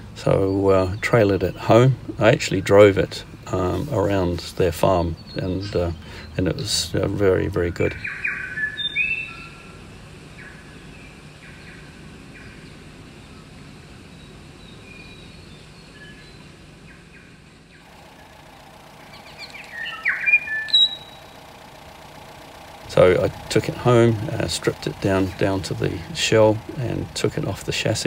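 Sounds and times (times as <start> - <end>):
birds chirping: 17.9 - 28.0.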